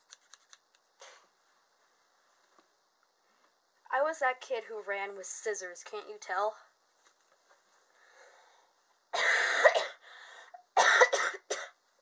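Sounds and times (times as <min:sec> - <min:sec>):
woman coughing: 0:09.2 - 0:10.0, 0:10.8 - 0:11.8.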